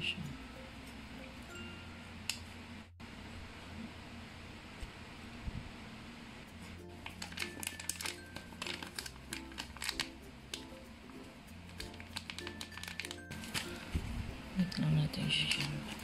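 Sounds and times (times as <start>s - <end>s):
background music: 0.0s - 2.4s, 6.6s - 16.0s
plastic bag crinkling: 7.0s - 10.7s, 11.7s - 14.0s, 14.6s - 16.0s.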